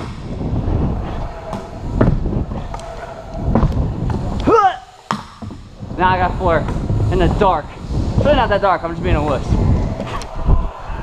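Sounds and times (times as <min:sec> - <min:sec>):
scooter wheels rumbling on ramp: 0:00.0 - 0:04.6, 0:05.2 - 0:11.0.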